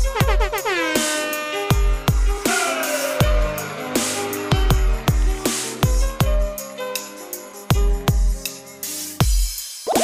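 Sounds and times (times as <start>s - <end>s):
electronic dance music: 0.0s - 1.3s.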